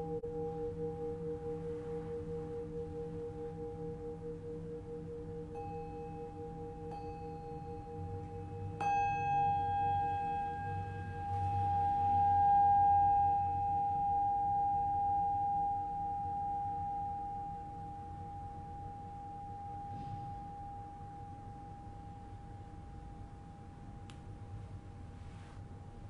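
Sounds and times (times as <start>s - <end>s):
singing bowls ringing: 0.0s - 22.9s.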